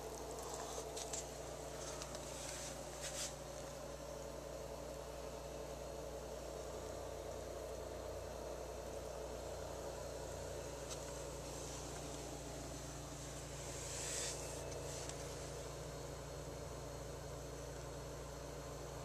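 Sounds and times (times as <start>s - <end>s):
low electrical hum: 0.0s - 19.0s
brief hiss: 13.6s - 15.2s.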